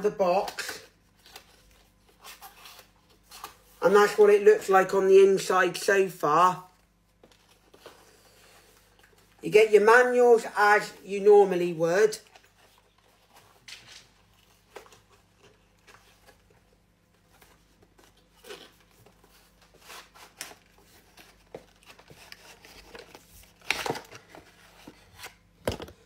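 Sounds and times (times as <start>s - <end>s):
cardboard and paper rustling: 0.4s - 4.2s, 6.7s - 9.4s, 12.2s - 26.0s.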